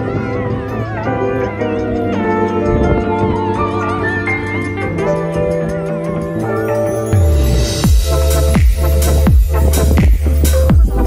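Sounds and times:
background music with wavering melody: 0.0 - 11.0.

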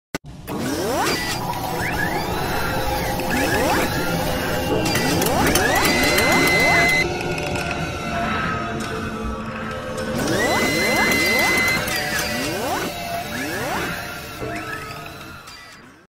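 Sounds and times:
rising mechanical whirs: 0.3 - 8.0, 8.8 - 16.0.

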